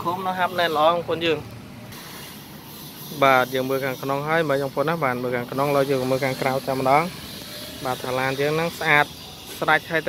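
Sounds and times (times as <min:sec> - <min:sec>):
man speaking: 0:07.8 - 0:10.0.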